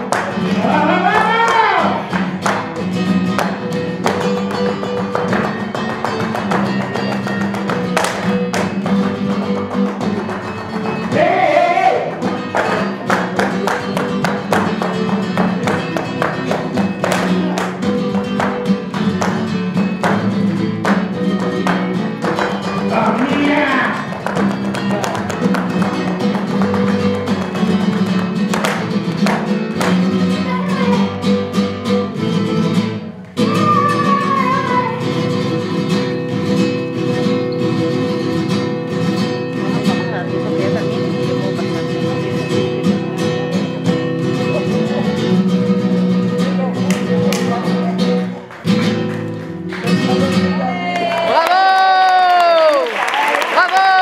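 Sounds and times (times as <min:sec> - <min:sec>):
acoustic guitar playing: 0:00.0 - 0:52.9
dancer's heel and toe stamps: 0:01.1 - 0:11.3, 0:12.1 - 0:30.4.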